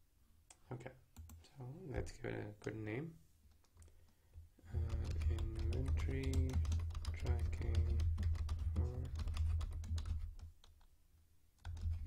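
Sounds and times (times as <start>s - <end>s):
typing on computer keyboard: 4.7s - 10.9s, 11.6s - 12.0s.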